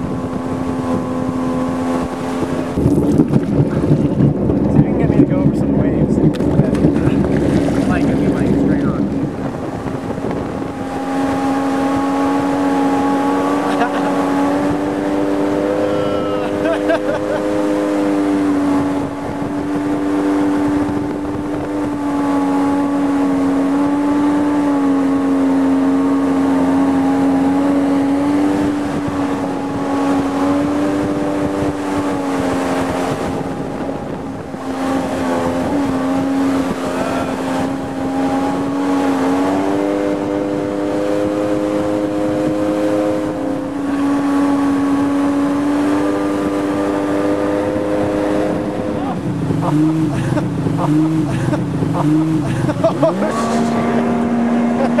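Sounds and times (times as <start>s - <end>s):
watercraft engine running: 0.0s - 55.0s.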